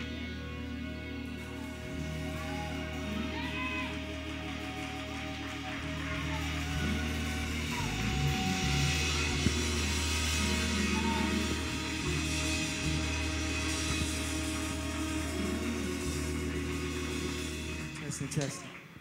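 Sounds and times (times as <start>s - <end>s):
low bass notes: 0.0s - 18.4s
live gospel band playing: 0.0s - 18.5s.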